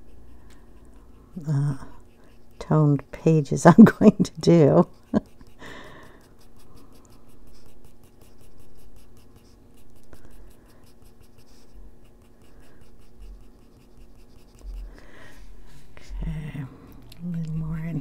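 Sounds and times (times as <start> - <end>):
colored pencil scratching on paper: 0.0 - 16.6, 17.2 - 18.0.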